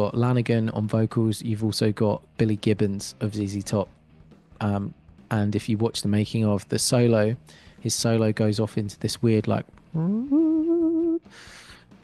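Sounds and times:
man humming a sliding pitch: 9.9s - 11.3s.

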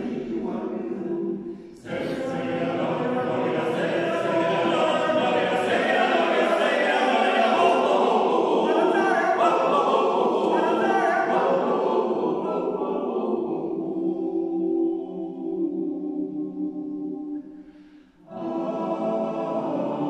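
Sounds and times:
male choir singing unaccompanied: 0.0s - 17.4s, 18.2s - 20.0s.

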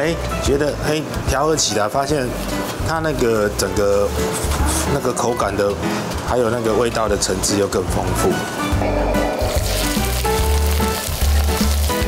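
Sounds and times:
background music: 0.0s - 12.0s
prawns sizzling in oil: 9.4s - 12.0s.

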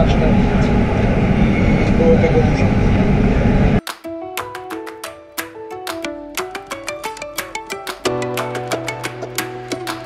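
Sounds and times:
metro train rumble: 0.0s - 3.8s
music of plucked notes: 3.8s - 10.0s.

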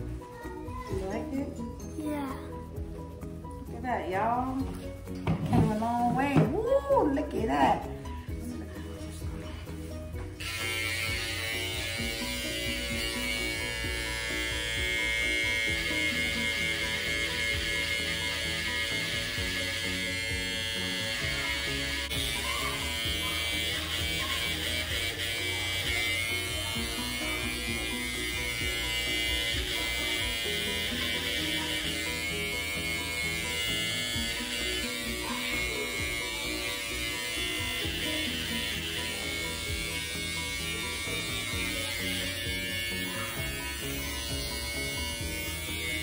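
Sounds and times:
background music: 0.0s - 46.0s
electric hair clippers buzzing: 10.3s - 46.0s.

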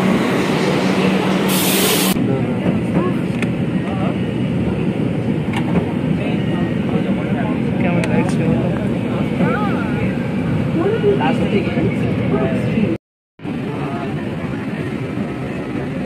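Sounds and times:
crowd voices: 0.6s - 16.0s.

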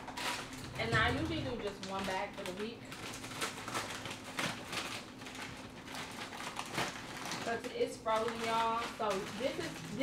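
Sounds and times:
plastic bag crinkling: 0.0s - 10.0s
scissors cutting plastic: 0.0s - 10.0s.

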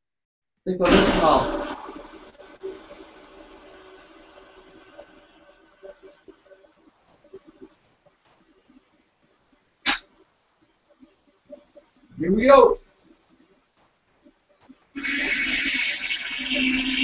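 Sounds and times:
steady machine hum: 0.8s - 12.1s, 12.9s - 17.0s
sharp click: 9.8s - 10.1s.

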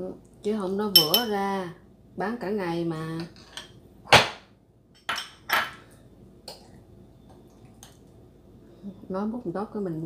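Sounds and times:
glass bowls and spoon clunking: 1.0s - 1.3s, 5.0s - 5.8s.

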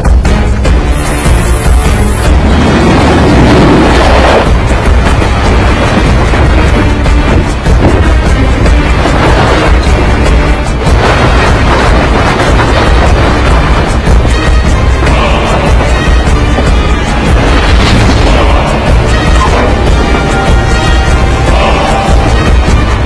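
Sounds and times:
action film music score: 0.0s - 23.0s
deep rumble: 0.0s - 23.0s
booms: 2.2s - 23.0s.

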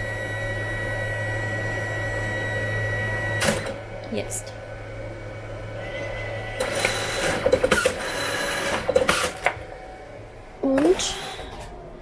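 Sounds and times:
printer motor whir: 0.0s - 12.0s
steady hum: 0.0s - 12.0s.

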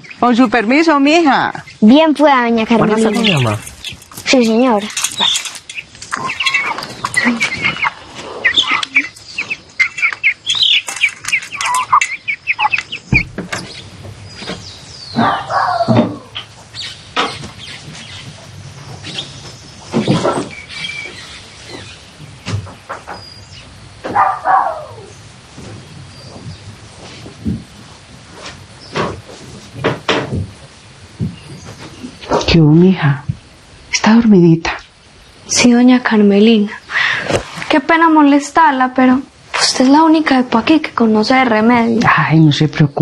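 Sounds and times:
birds chirping rapidly: 0.0s - 27.7s, 28.7s - 29.1s, 31.1s - 37.3s.

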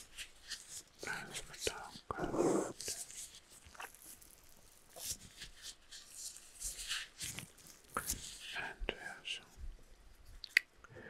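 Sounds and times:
man whispering: 1.0s - 3.1s, 8.5s - 9.6s.

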